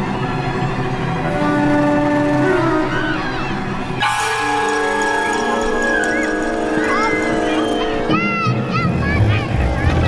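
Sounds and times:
high wavering tones: 1.3s - 9.1s.

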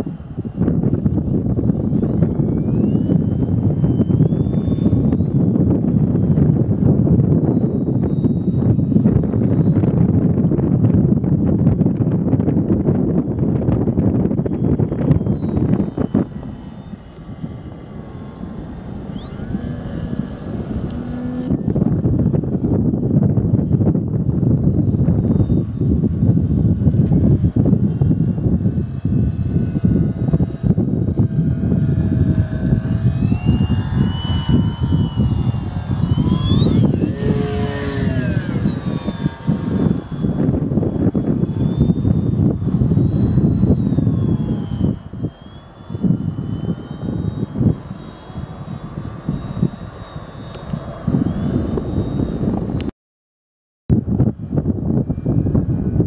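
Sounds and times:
model plane electric motor whining: 0.0s - 52.9s, 53.9s - 56.0s
wind rumble on microphone: 0.0s - 52.9s, 53.9s - 56.0s.

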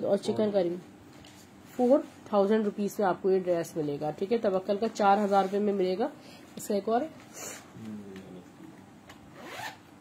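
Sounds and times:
fabric rubbing and rustling: 4.9s - 5.9s, 9.4s - 9.8s.

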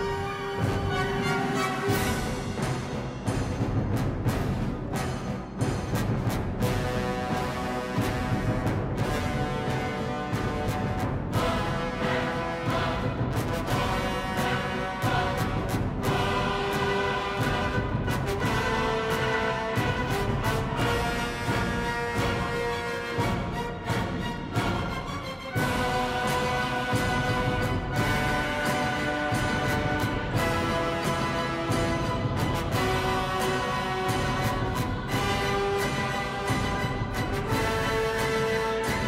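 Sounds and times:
dramatic orchestral music: 0.0s - 39.0s.

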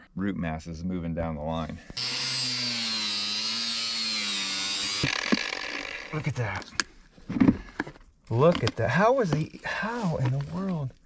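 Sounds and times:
power cutting tool whining: 2.0s - 6.5s.

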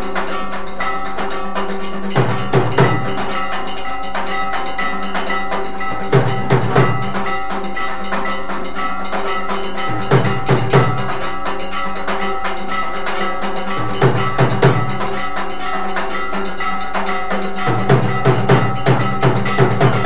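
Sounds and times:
drum beaten in groups: 0.0s - 20.0s
metal bells clanging rapidly: 0.0s - 20.0s.

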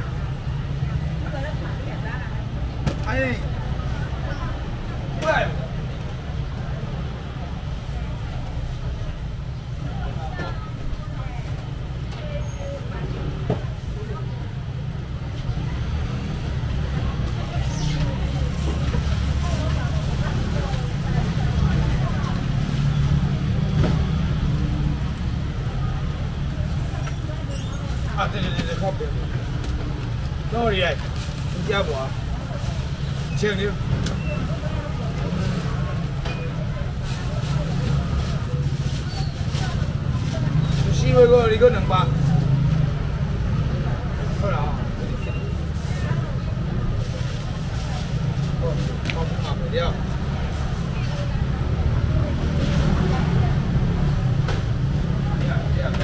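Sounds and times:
market crowd chatter: 0.0s - 56.0s.

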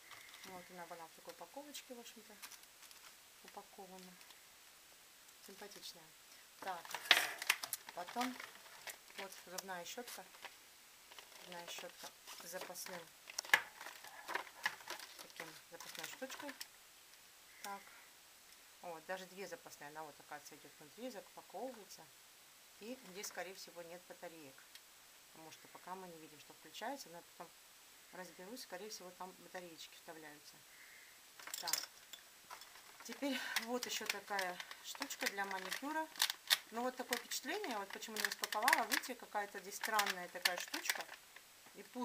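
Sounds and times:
plastic packaging crinkling: 0.0s - 1.5s, 2.2s - 4.4s, 6.6s - 16.7s, 31.4s - 42.0s.

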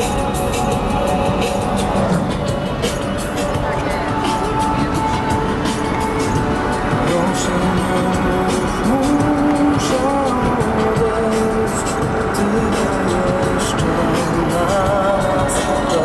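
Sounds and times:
music playing: 0.0s - 16.0s
road and wind noise in car: 0.0s - 16.0s.

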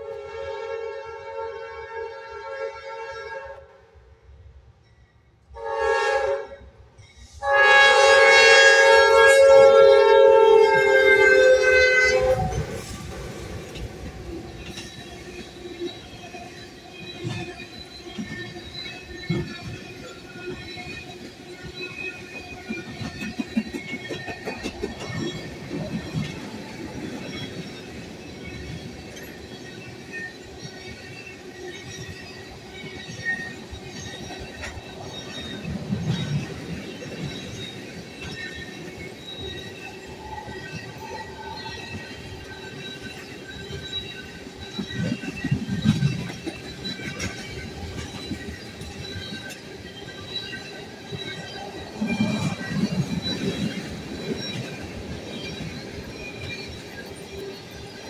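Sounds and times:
locomotive air horn blast: 0.0s - 3.7s, 5.6s - 6.6s, 7.3s - 12.8s
train wheels rolling: 7.0s - 58.0s
high wheel squeal: 8.1s - 58.0s.

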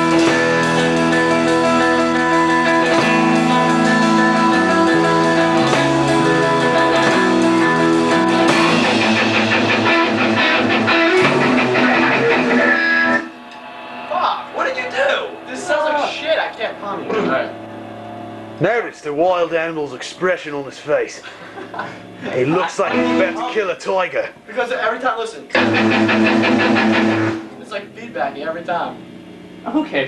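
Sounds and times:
electric guitar chords: 0.0s - 20.5s, 21.3s - 23.8s, 25.6s - 29.7s.

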